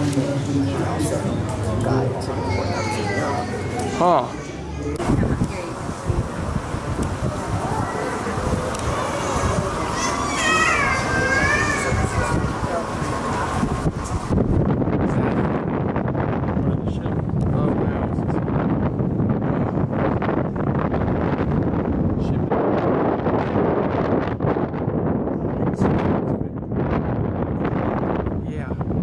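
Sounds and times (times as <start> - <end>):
wind rushing over microphone: 0.0 - 29.0.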